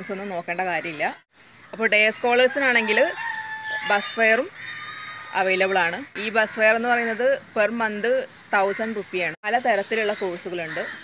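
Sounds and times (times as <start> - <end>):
rooster crowing: 2.4 - 5.4.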